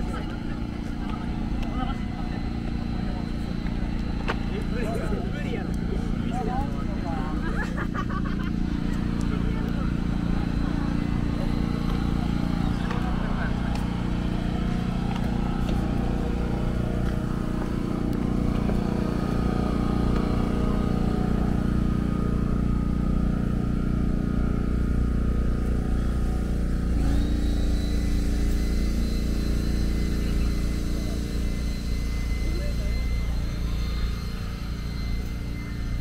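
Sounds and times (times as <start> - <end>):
vehicle engine running: 0.0 - 36.0.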